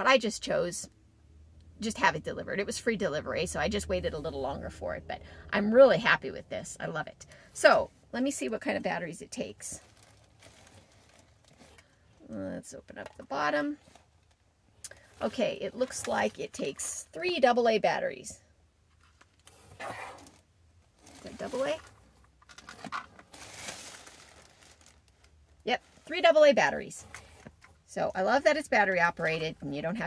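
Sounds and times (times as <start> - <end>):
faint handling rustle: 9.6 - 12.2.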